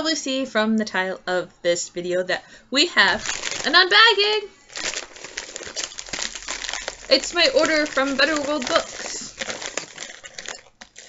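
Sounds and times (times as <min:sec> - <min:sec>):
mailing bag crinkling: 0:03.1 - 0:11.0.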